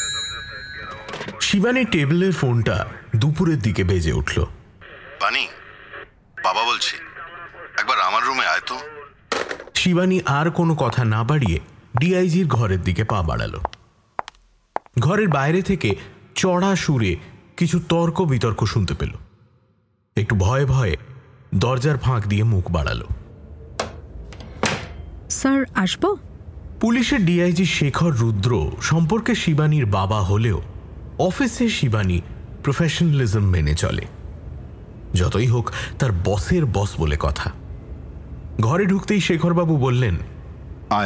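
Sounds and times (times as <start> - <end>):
radio drama dialogue: 0.6 - 14.3.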